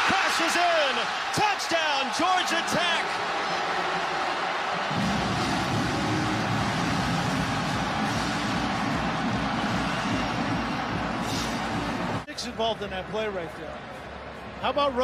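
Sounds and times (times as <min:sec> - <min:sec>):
loud stadium crowd noise: 0:00.0 - 0:15.0
bass-heavy music: 0:05.0 - 0:12.3.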